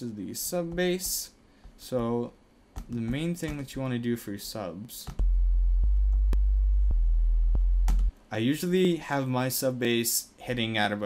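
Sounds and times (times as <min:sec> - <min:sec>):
deep sine sub bass note: 0:05.2 - 0:08.1.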